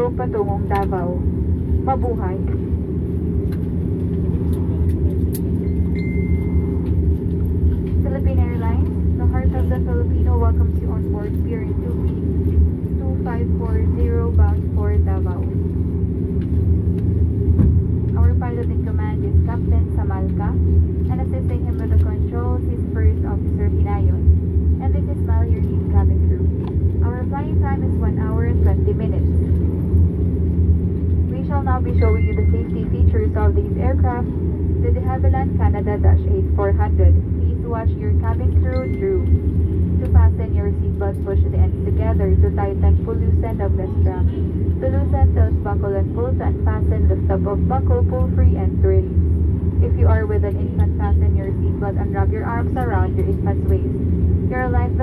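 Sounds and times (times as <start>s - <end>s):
aircraft cabin drone: 0.0s - 55.0s.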